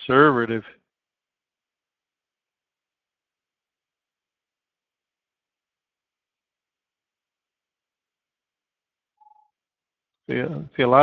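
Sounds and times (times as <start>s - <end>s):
short electronic beep: 9.2s - 9.5s.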